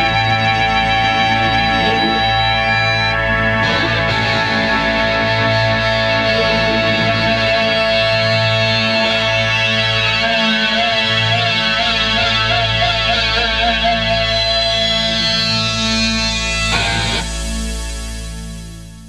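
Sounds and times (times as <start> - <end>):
rock band sustained guitar chord: 0.0 - 18.0.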